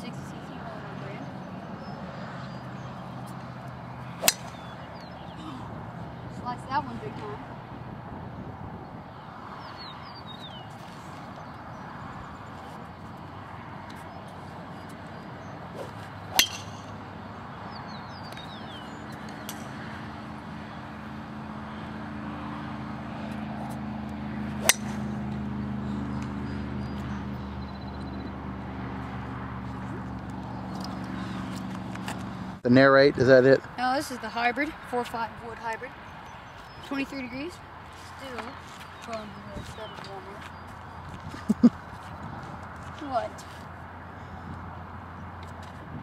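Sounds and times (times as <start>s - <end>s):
steady engine hum: 0.0s - 46.0s
bird chirping: 4.0s - 5.5s, 8.8s - 13.3s, 17.5s - 19.5s, 24.6s - 28.4s
golf club striking ball: 4.2s - 5.2s, 15.8s - 17.0s, 24.5s - 25.5s.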